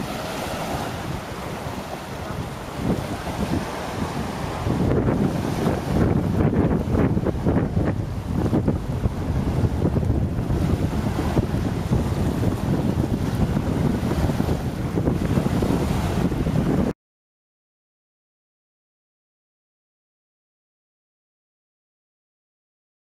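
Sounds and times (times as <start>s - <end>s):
small waves washing onto shore: 0.0s - 16.9s
wind buffeting microphone: 0.0s - 17.0s.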